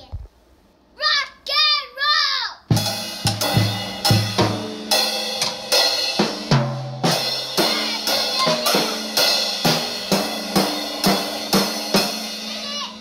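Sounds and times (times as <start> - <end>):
child calling: 1.0 - 2.7, 7.6 - 9.2, 12.3 - 13.0.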